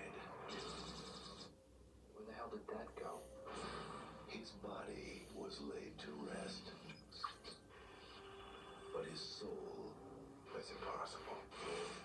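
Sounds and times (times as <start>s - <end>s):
quiet speech from television: 0.0s - 12.0s.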